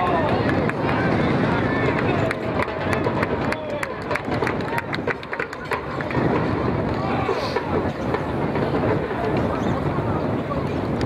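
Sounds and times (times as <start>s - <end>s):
outdoor rush of noise: 0.0s - 11.0s.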